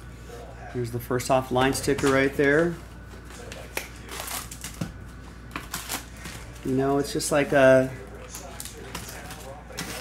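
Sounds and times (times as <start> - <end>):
foil packs rustling and crinkling: 1.6 - 10.0.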